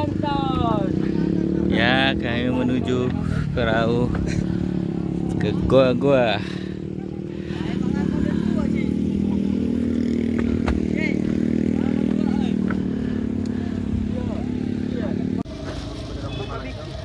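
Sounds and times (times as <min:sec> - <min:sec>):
boat engine humming: 0:00.0 - 0:17.0.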